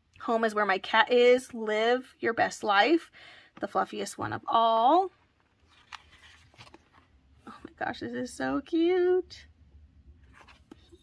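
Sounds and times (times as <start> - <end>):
paper page rustling: 5.3 - 7.1, 10.2 - 11.0.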